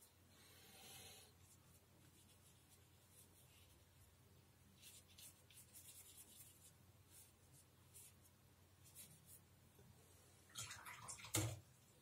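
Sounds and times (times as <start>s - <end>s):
paintbrush strokes on paper: 1.3s - 9.5s.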